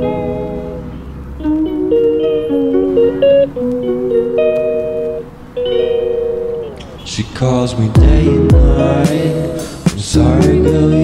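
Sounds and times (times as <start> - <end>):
held keyboard chords: 0.0 - 11.0.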